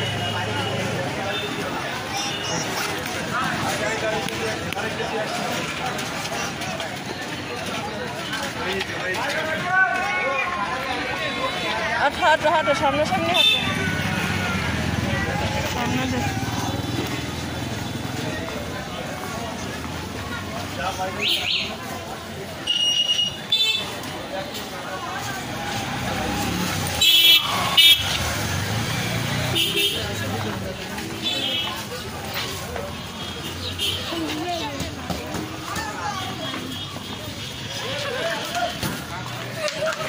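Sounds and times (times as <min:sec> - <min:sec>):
children talking: 0:00.0 - 0:40.0
people's voices: 0:00.0 - 0:40.0
street noise: 0:00.0 - 0:40.0.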